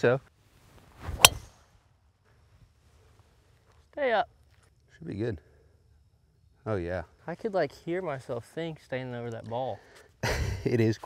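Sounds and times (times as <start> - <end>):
golf club striking ball: 1.2 - 1.5.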